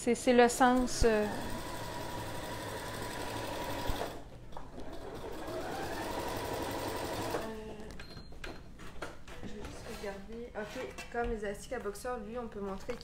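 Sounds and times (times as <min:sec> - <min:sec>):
electric sewing machine stitching: 0:00.7 - 0:07.6.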